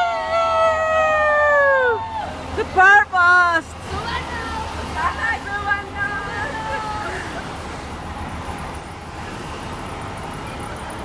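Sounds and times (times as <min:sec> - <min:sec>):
women whooping: 0:00.0 - 0:02.4
low street rumble: 0:00.0 - 0:11.0.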